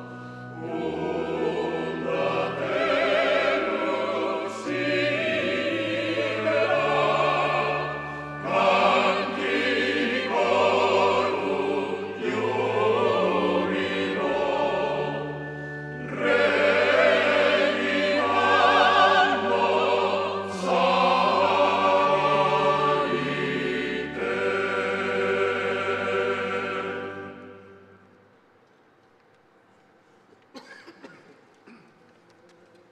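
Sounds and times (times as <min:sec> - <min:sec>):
choir singing sustained chords: 0:00.0 - 0:28.6.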